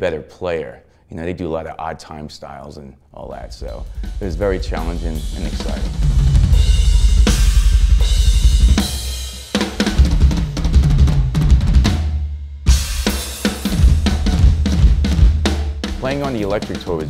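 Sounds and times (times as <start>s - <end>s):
rock drum kit: 3.3s - 17.0s
loud cymbal crash: 3.7s - 10.0s.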